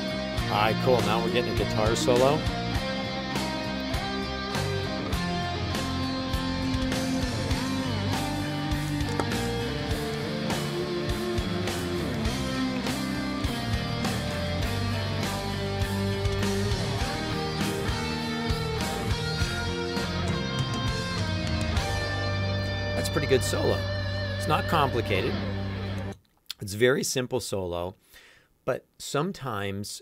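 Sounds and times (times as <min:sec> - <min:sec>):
drum beat and bass: 0:00.0 - 0:25.7
electric guitar solo: 0:00.0 - 0:26.2.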